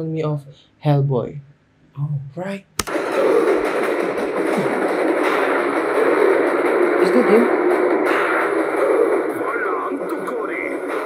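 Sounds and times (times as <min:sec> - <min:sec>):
dense trailer soundtrack: 0:02.8 - 0:11.0
music: 0:02.9 - 0:11.0.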